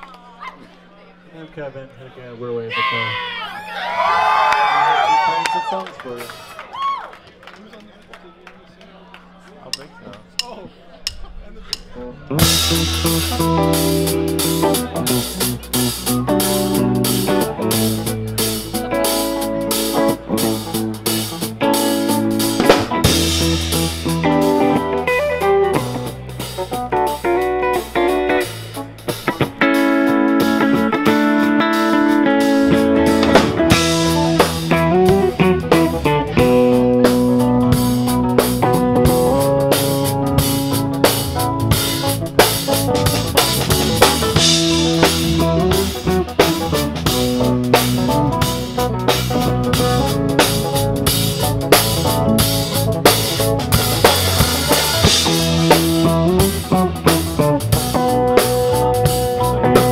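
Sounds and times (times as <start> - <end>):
keyboard: 8.3 - 59.9
bass guitar: 9.7 - 59.9
drum kit: 9.7 - 59.9
electric guitar: 11.1 - 59.9.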